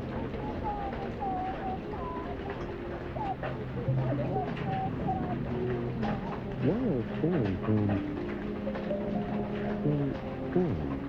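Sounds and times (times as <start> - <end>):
rain tapping on a window: 0.0 - 11.0
steady rain: 0.0 - 11.0.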